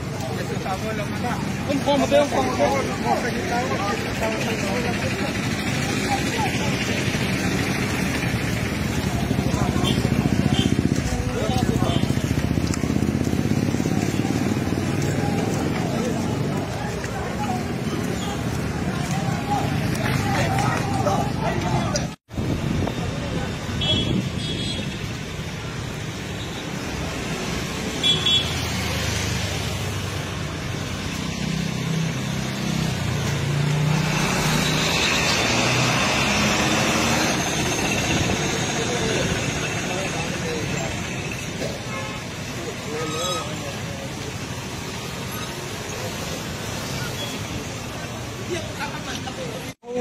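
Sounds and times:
crowd voices: 0:00.0 - 0:24.4, 0:33.8 - 0:50.0
cars and motorbikes passing: 0:00.0 - 0:50.0
road traffic: 0:00.0 - 0:50.0.

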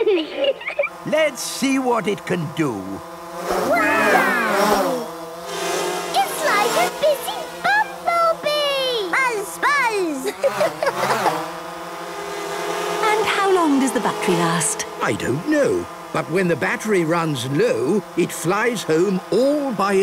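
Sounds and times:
toy drone buzzing: 0:00.0 - 0:20.0
voices gliding up and down: 0:00.0 - 0:20.0.

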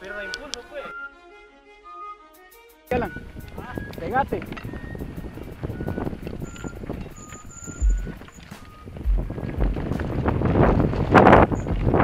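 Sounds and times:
wind buffeting microphone: 0:02.9 - 0:12.0
bike tyres rattling over trail: 0:03.2 - 0:12.0.

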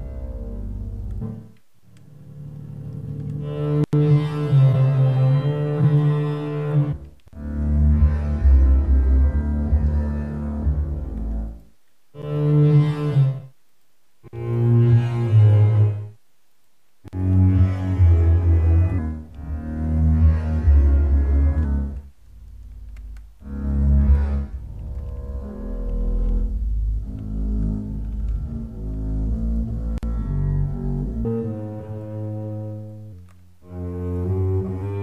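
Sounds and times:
deep bowed bass phrases: 0:00.0 - 0:11.6, 0:17.1 - 0:35.0.

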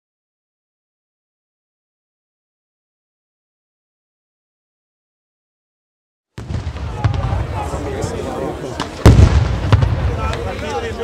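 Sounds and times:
crowd chattering: 0:06.4 - 0:11.0
firecrackers booming and banging: 0:06.4 - 0:11.0.

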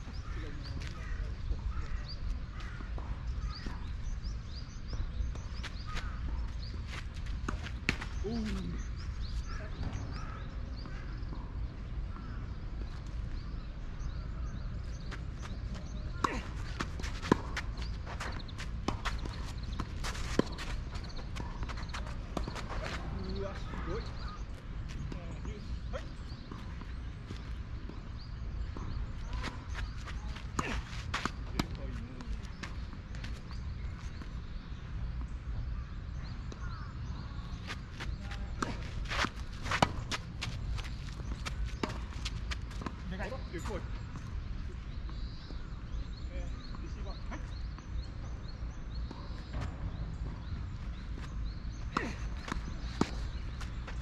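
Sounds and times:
tennis ball bouncing: 0:14.9 - 0:24.4, 0:36.5 - 0:44.2, 0:48.8 - 0:54.0.

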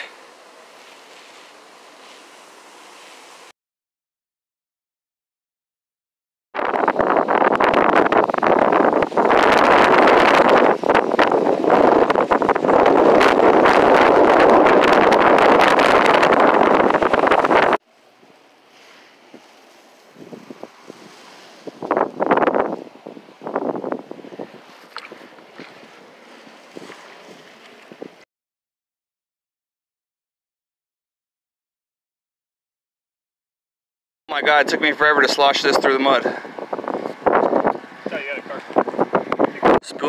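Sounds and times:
wind buffeting microphone: 0:06.6 - 0:17.8, 0:18.8 - 0:28.2, 0:34.3 - 0:40.0
kayak paddle sloshing water: 0:24.6 - 0:28.1.

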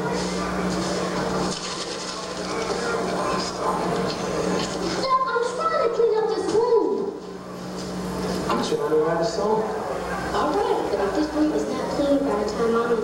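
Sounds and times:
steady low hum: 0:00.0 - 0:13.0.

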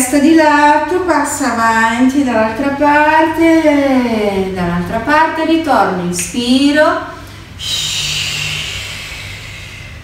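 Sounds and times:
long airy breath: 0:07.3 - 0:10.0.

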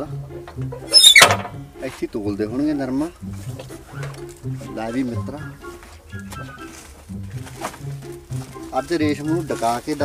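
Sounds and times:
low background music: 0:00.0 - 0:10.0
high-pitched squeal: 0:00.9 - 0:01.5.

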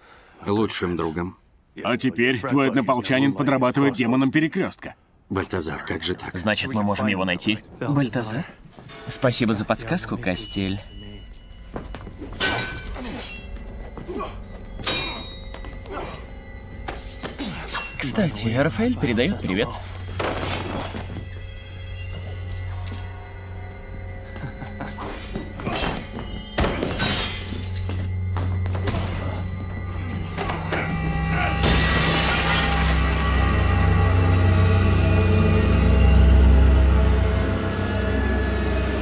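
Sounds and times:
dramatic film score: 0:00.4 - 0:39.0
glass shards tinkling: 0:08.9 - 0:28.0
glass shattering: 0:12.3 - 0:18.3, 0:24.6 - 0:28.0, 0:31.6 - 0:33.8
glass breaking: 0:25.1 - 0:28.0, 0:31.6 - 0:33.7.

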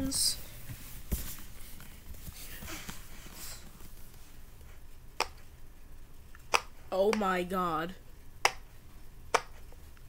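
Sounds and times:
fidget toy pops: 0:06.5 - 0:06.7.

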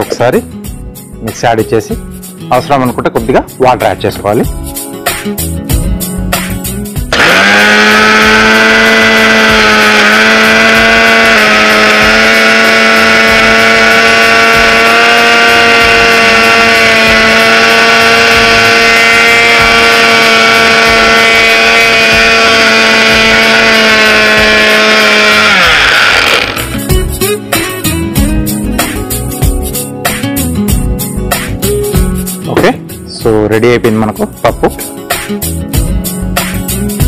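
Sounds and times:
mixer grinder motor whine: 0:07.0 - 0:27.0.

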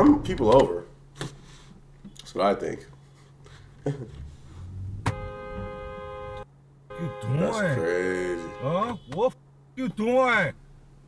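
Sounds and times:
car horn blast: 0:04.9 - 0:09.4.

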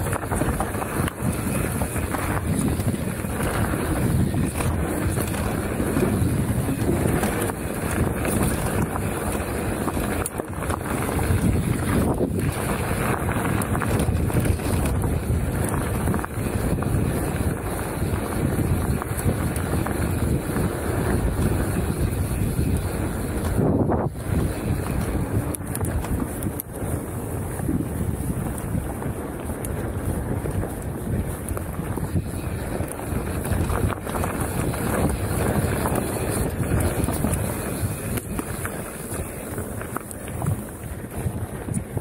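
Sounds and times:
bike rattles and knocks: 0:00.0 - 0:42.0
bike tyres rolling on gravel: 0:00.0 - 0:42.0
wind buffeting microphone: 0:00.0 - 0:42.0.

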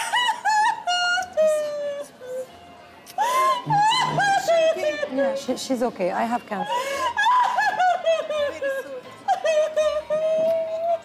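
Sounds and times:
woman sobbing: 0:00.0 - 0:02.6, 0:03.2 - 0:05.5, 0:06.4 - 0:11.0.

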